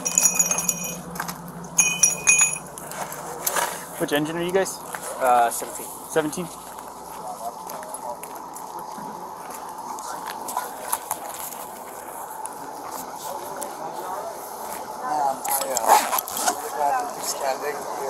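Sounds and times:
steady hum: 0.0 - 15.5
people talking: 1.8 - 18.0.

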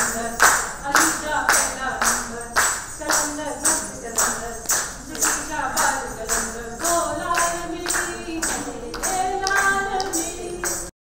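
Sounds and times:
woman singing: 0.0 - 10.9
rhythmic hand-clapping: 0.0 - 11.0.

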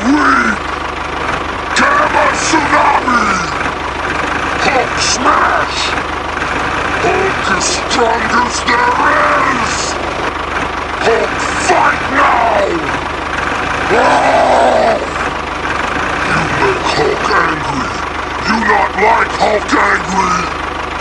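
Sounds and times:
engine idling sound effect: 0.0 - 21.0
person shouting and growling: 7.0 - 10.0, 11.1 - 13.0, 13.8 - 15.2, 16.2 - 20.6.

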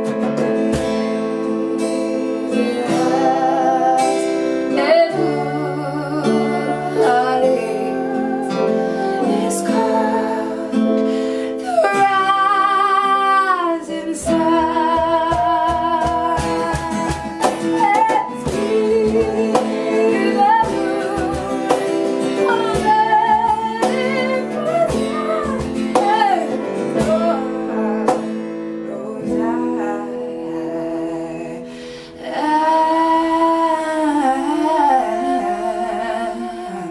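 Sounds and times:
hand-played cajon beat: 0.0 - 5.4, 11.7 - 28.6
keyboard piano: 0.0 - 36.9
strummed acoustic guitar: 0.0 - 36.9
women singing in harmony: 1.2 - 36.9.

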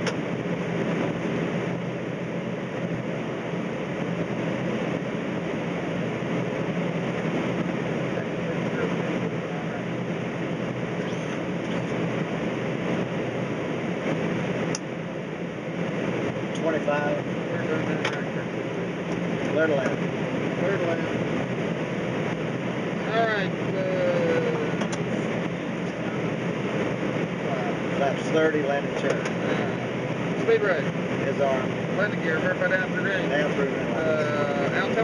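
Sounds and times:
low engine hum: 0.0 - 35.0
rush of airflow: 0.0 - 35.0.

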